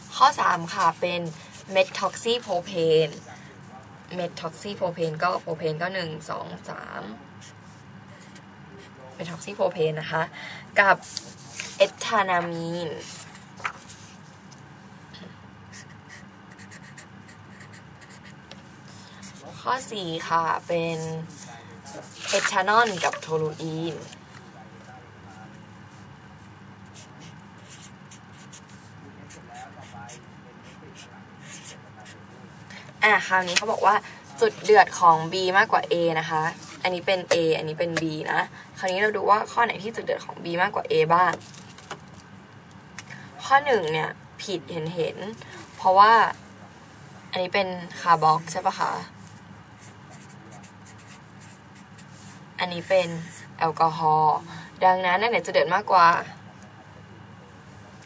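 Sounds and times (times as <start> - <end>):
woman speaking: 0.0 - 3.4, 4.1 - 7.2, 9.2 - 13.2, 19.2 - 21.5, 22.2 - 24.2, 32.8 - 41.4, 43.3 - 46.4, 47.3 - 49.2, 52.6 - 56.4
low steady hum: 0.0 - 58.0
marker pen scratching on paper: 7.4 - 8.9, 15.7 - 18.4, 19.0 - 24.2, 26.9 - 32.2, 48.4 - 53.5.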